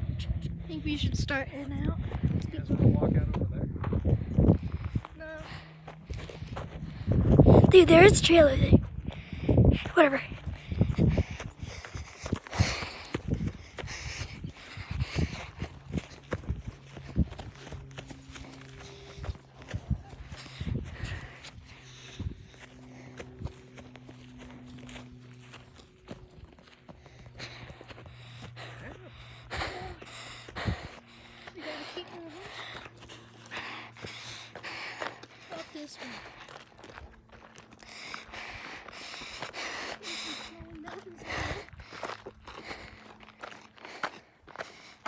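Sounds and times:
steady low hum: 0.0 - 45.0
footsteps on dirt trail: 1.7 - 45.0.

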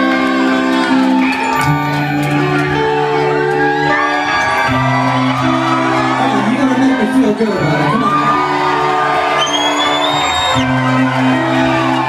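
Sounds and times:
crowd whooping: 0.0 - 12.0
rock band playing live: 0.0 - 12.0
sustained keyboard chords: 0.0 - 12.0.

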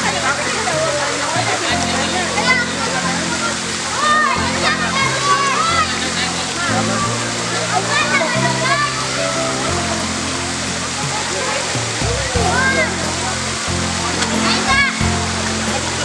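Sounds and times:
background music with bass: 0.0 - 16.0
people and children talking: 0.0 - 16.0
water pouring from fountain: 0.0 - 16.0
water splashing: 0.0 - 16.0.

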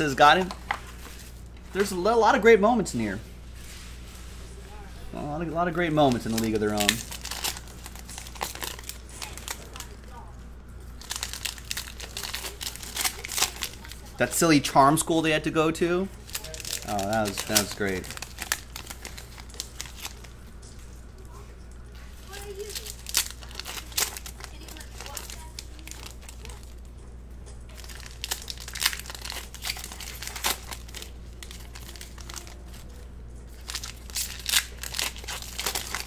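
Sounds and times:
foil wrappers crinkling: 0.0 - 4.6, 5.2 - 27.0, 27.6 - 36.0.

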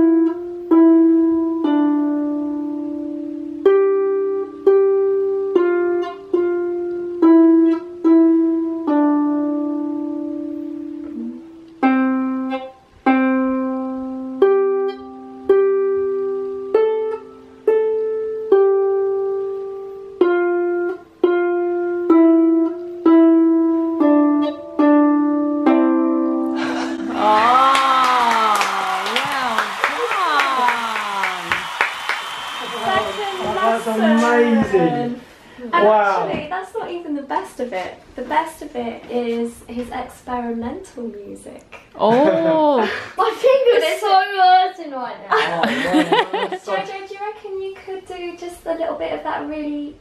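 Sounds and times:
person cheering: 26.8 - 35.2, 45.4 - 46.6
hand claps: 27.2 - 34.7.

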